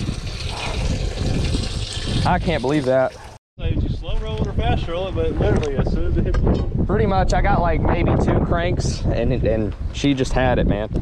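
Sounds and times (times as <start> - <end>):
wind buffeting microphone: 0.0 - 2.7, 3.6 - 11.0.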